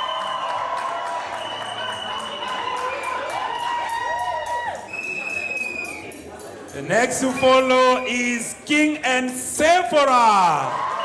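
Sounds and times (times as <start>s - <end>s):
crowd cheering and clapping: 0.0s - 6.2s, 9.3s - 11.0s.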